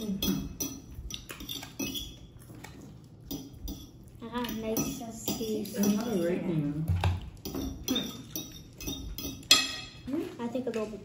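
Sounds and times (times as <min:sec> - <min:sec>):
cutlery clinking against dishes: 0:00.0 - 0:10.1.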